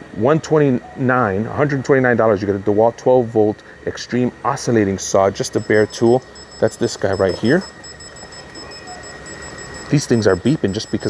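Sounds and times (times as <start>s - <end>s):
alarm tags beeping: 5.3s - 11.0s.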